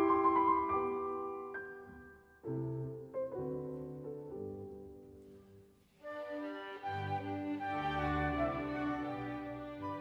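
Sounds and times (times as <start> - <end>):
solo piano chords and notes: 0.0 - 5.8.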